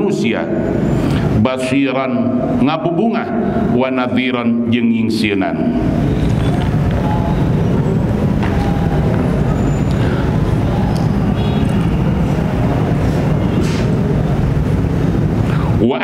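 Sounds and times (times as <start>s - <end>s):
loud low rumbling: 5.7s - 15.8s.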